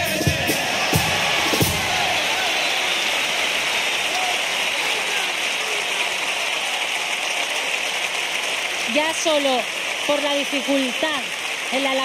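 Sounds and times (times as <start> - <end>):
large audience applauding: 0.0 - 12.0.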